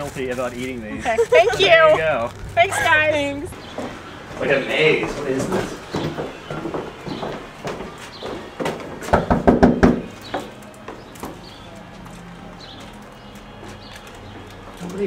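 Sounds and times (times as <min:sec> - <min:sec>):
knocking on door: 0:05.8 - 0:10.5.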